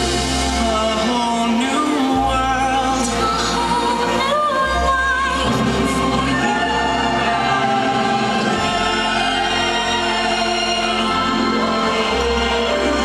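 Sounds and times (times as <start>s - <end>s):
choir holding long notes: 0.0s - 13.0s
orchestral music over loudspeakers: 0.0s - 13.0s.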